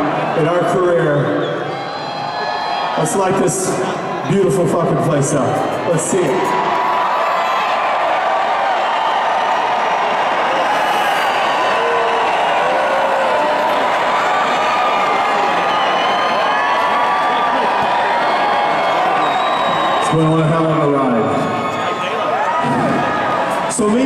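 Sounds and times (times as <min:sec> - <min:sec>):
crowd cheering and whooping: 0:00.0 - 0:04.9, 0:05.6 - 0:24.0.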